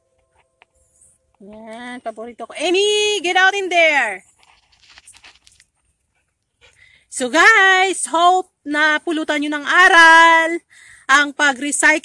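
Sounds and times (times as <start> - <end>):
dog panting: 6.1 - 6.9.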